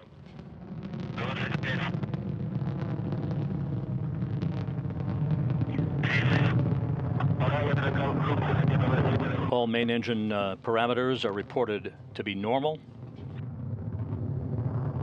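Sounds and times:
rocket engines rumbling: 0.0 - 15.0.

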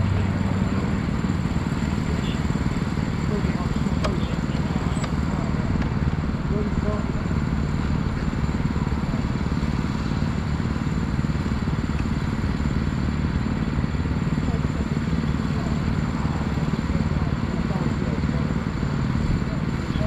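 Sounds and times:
kart engine idling: 0.0 - 20.0.

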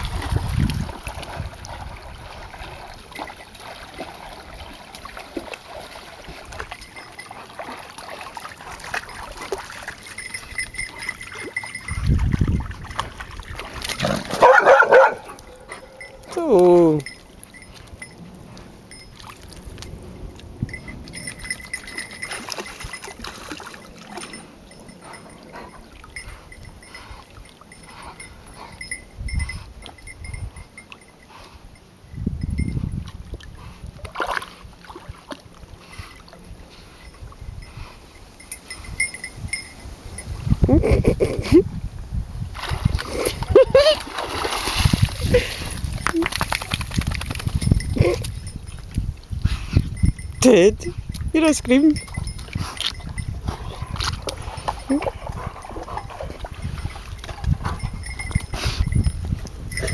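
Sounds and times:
dog wading through water: 0.0 - 31.8, 32.8 - 41.6, 42.5 - 49.4, 51.1 - 59.9
small metal bell tinkling: 6.7 - 7.7, 8.9 - 13.2, 15.7 - 18.3, 18.9 - 20.0, 20.6 - 33.0, 36.9 - 41.1, 47.4 - 49.0, 49.8 - 59.9
dog barking: 14.4 - 16.0.

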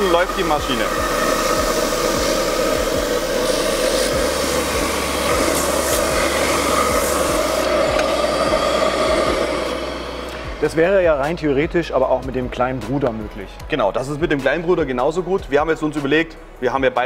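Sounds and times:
orbital sander rasping: 0.0 - 11.6.

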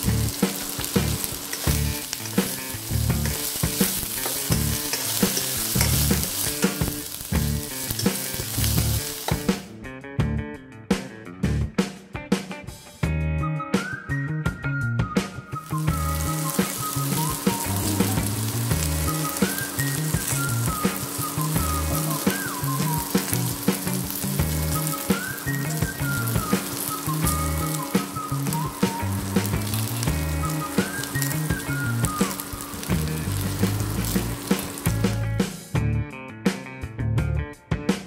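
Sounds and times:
okra sizzling in a wok: 0.0 - 9.6, 15.6 - 35.8
background music: 0.0 - 38.0.

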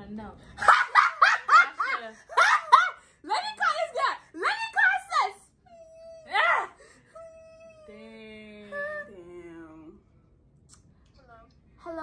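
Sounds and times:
young women laughing: 0.6 - 3.0.

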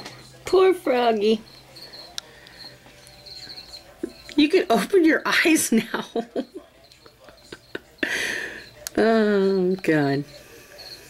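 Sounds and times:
cricket chirping: 1.4 - 4.6, 6.1 - 11.0.

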